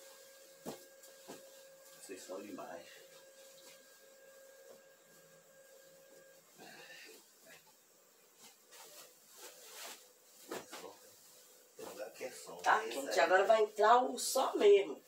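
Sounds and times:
faint fabric rustling: 0.0s - 13.8s
faint steady hum: 0.0s - 15.0s.

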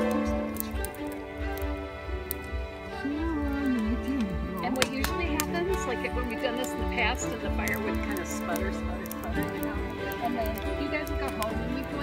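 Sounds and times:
low uneven rumble: 0.0s - 12.0s
soft background music: 0.0s - 12.0s
wood clicking and cracking: 0.0s - 12.0s.

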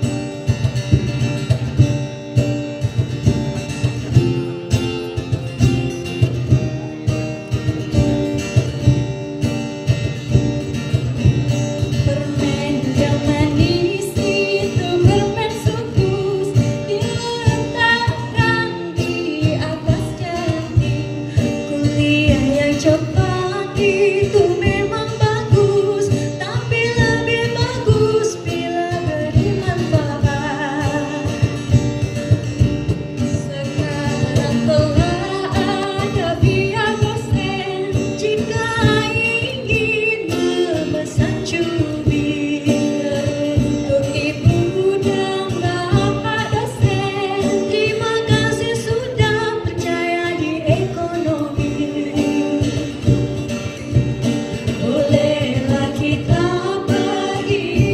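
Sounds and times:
instrumental accompaniment: 0.0s - 57.9s
women singing over a pa: 12.0s - 31.6s, 33.3s - 53.4s, 54.6s - 57.9s.

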